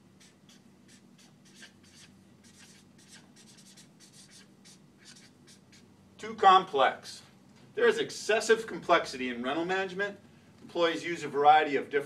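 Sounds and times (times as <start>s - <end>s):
marker writing on whiteboard: 0.2s - 5.9s.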